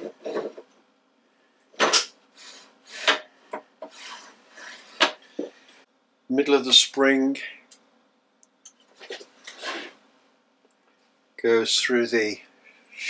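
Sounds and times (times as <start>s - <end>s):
metal rubbing scrapes: 2.3s - 5.1s, 9.0s - 10.0s.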